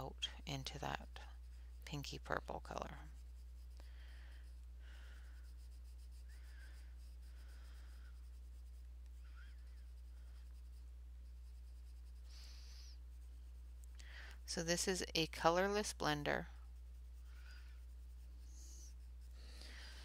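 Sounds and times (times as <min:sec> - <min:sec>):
steady low hum: 0:00.0 - 0:20.0
pencil rubbing on paper: 0:00.4 - 0:13.8, 0:14.5 - 0:20.0.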